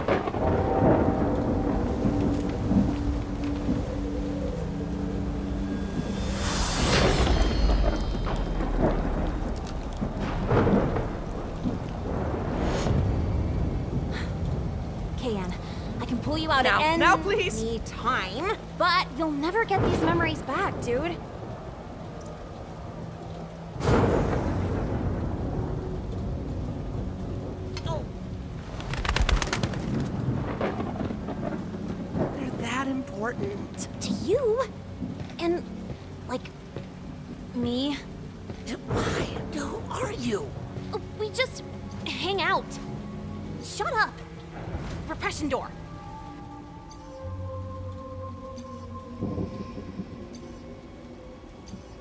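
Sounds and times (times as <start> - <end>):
deep rumbling drone: 0.0 - 33.8
surges of thunder-like noise: 0.0 - 47.0, 48.9 - 52.0
crow wing flutters: 28.6 - 30.3.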